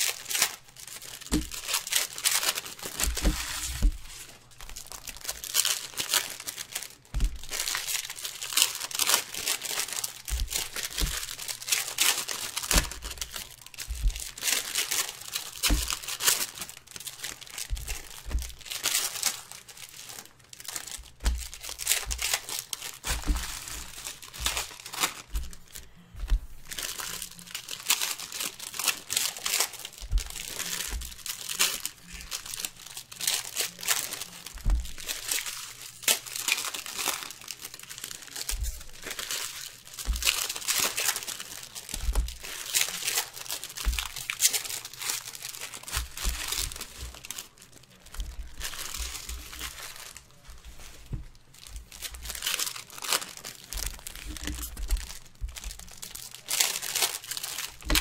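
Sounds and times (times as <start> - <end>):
foil wrappers crinkling and tearing: 0.0 - 58.0.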